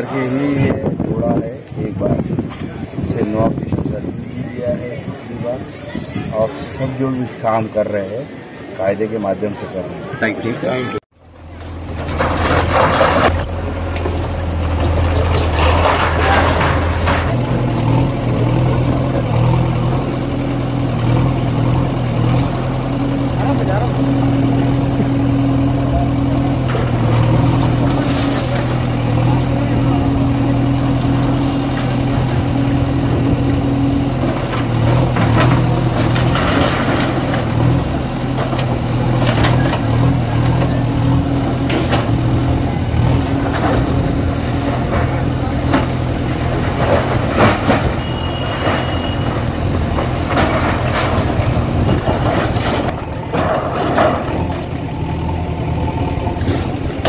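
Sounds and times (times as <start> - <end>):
diesel engine running: 11.1 - 57.0
masonry breaking and crashing: 11.7 - 17.4, 34.4 - 37.9, 43.2 - 54.8.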